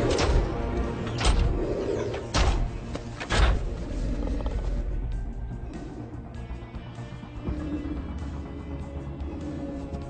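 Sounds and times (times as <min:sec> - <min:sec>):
trailer soundtrack music: 0:00.0 - 0:10.0
deep low creature growl: 0:03.4 - 0:10.0.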